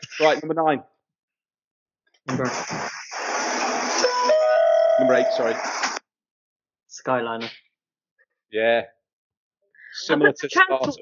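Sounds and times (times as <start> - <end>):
electronic chime: 4.0 - 5.8.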